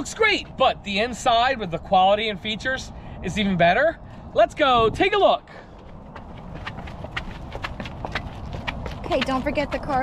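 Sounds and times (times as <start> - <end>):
running footsteps on asphalt: 5.5 - 10.0.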